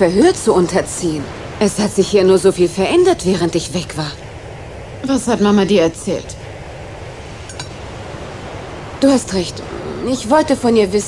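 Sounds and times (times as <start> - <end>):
room tone hum and hiss: 0.0 - 11.0.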